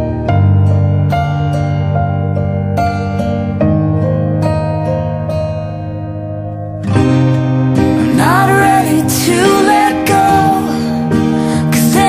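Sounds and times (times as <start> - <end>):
pop ballad guitar chords: 0.0 - 12.0.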